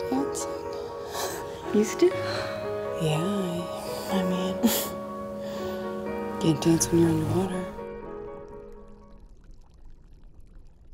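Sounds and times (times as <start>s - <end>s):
faint crackling trickle: 0.0s - 10.9s.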